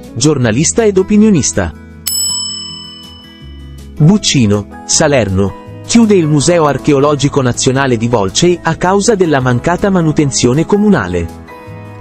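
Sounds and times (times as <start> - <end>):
bright chime: 2.1 - 3.9.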